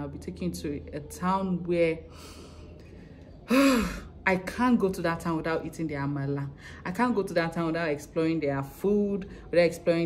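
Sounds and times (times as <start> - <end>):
woman sighing: 3.5 - 4.2.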